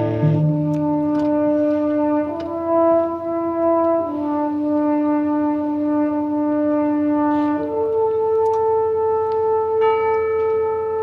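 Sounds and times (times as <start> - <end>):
band with sustained wind notes: 0.0 - 11.0.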